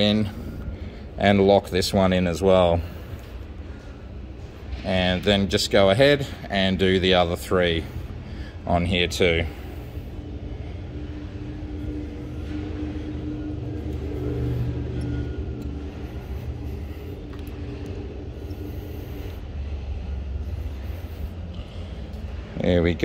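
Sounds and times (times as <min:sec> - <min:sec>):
motor rumble with hum: 0:00.0 - 0:23.0.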